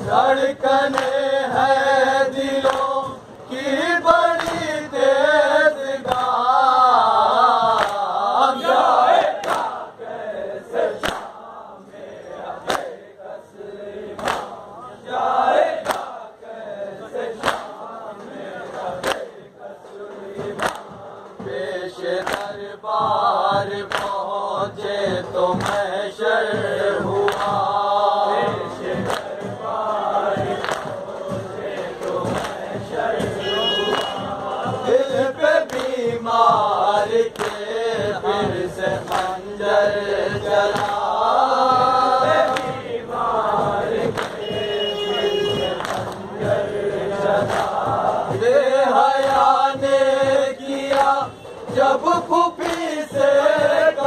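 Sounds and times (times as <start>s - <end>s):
men chanting a lament: 0.0s - 54.0s.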